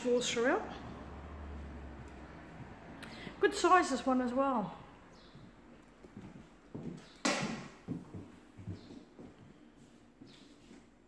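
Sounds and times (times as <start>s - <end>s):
footsteps on wooden floor: 0.8s - 3.0s, 4.7s - 10.9s.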